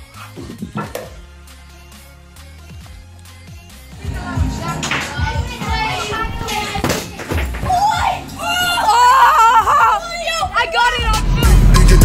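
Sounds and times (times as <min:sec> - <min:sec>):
faint background music: 0:03.6 - 0:11.6
children chattering excitedly: 0:04.0 - 0:11.5.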